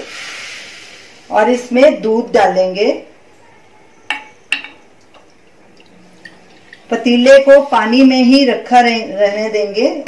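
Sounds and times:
steel cookware clinks: 4.1 - 4.9
liquid pouring: 5.0 - 7.2.

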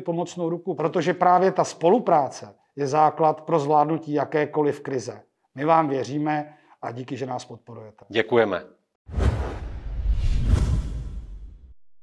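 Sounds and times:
whoosh sound effect: 9.1 - 11.7.

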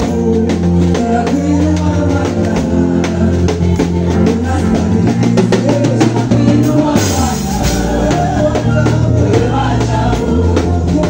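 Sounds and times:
steady drum beat: 0.0 - 11.0
sustained bass line: 0.0 - 11.0
voices singing gospel: 0.0 - 11.0.

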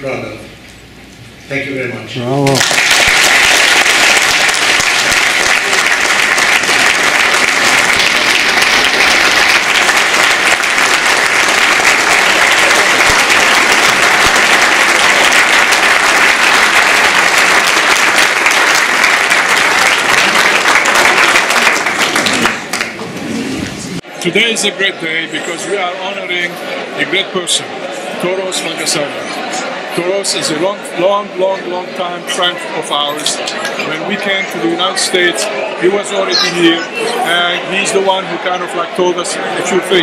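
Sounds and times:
audience applauding: 2.4 - 23.1.

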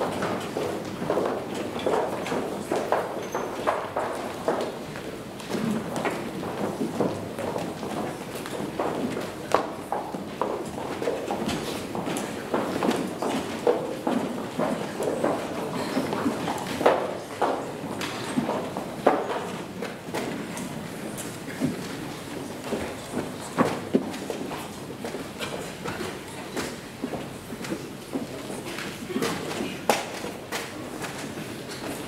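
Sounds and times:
hard-soled footsteps on wooden stage: 0.0 - 32.0.

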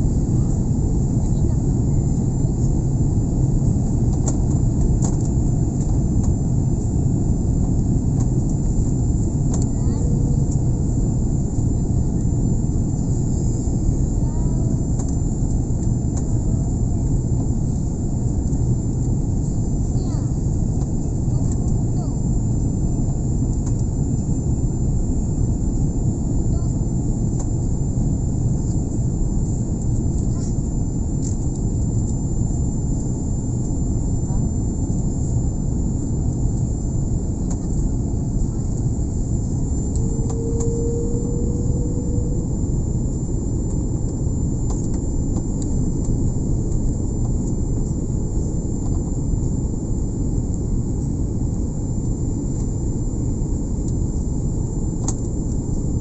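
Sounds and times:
airliner engines roaring: 0.0 - 56.0
thin high-pitched whine: 39.4 - 44.2.

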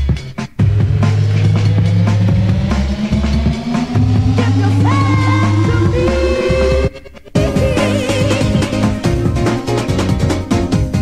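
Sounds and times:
drum hits: 0.0 - 11.0
thin synth tone rising: 0.8 - 8.8.

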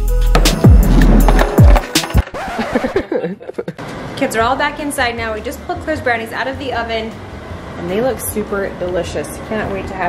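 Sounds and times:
background music: 0.0 - 3.1.

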